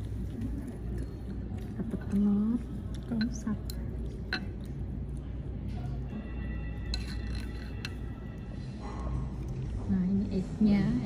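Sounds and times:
faint music: 0.0s - 11.0s
steady low hum: 0.0s - 11.0s
tableware clinks: 6.8s - 8.1s.

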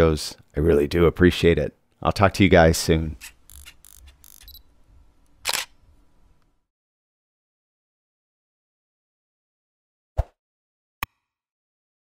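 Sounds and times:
camera shutter click: 3.2s - 4.6s, 5.4s - 5.8s.

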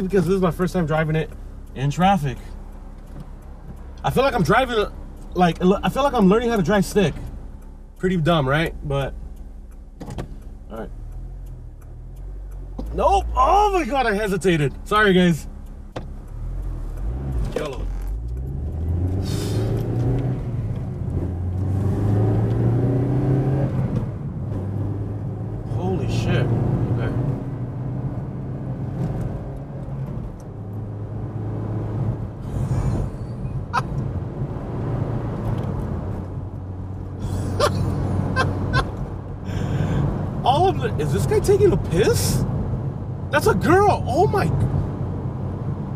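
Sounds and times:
car engine accelerating: 0.0s - 45.9s.

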